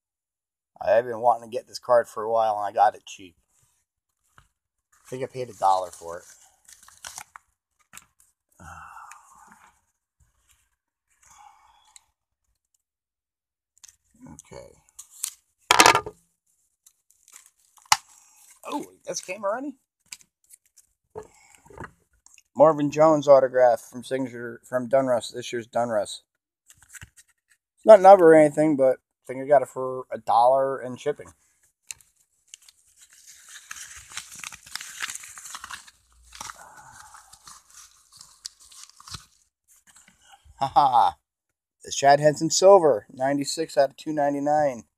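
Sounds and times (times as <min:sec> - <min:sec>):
paper crinkling: 0:03.5 - 0:08.4, 0:16.5 - 0:19.4, 0:20.0 - 0:21.7, 0:26.7 - 0:27.6, 0:31.9 - 0:40.3
paper packaging tearing: 0:05.1 - 0:08.1, 0:32.5 - 0:40.0.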